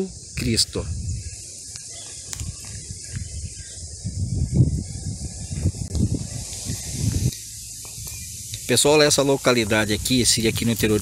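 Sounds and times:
high insect chorus: 0:00.0 - 0:11.0.

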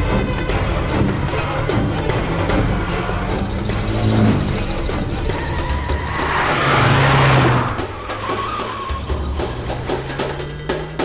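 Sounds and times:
car speeding past: 0:00.7 - 0:11.0.

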